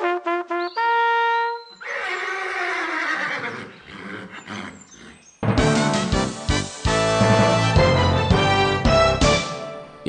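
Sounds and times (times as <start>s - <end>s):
brass fanfare: 0.0s - 1.6s, 5.4s - 9.9s
horse whinnying: 1.6s - 5.4s.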